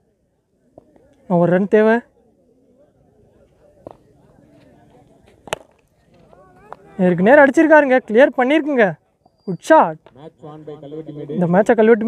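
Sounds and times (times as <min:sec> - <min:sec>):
faint distant voices: 0:00.0 - 0:12.0
cricket bat striking ball: 0:05.3 - 0:06.9.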